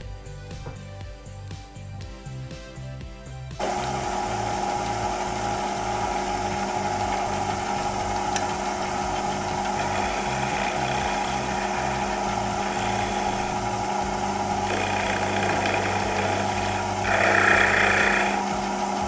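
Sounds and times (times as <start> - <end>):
turning tool cutting wood: 3.6 - 19.0
wood lathe humming: 3.6 - 19.0.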